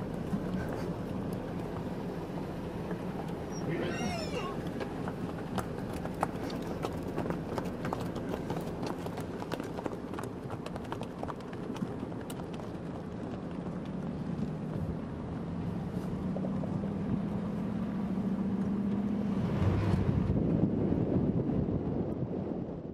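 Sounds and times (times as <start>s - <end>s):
hooves clip-clopping on asphalt: 0.0s - 22.9s
vehicle engine hum: 0.0s - 22.9s.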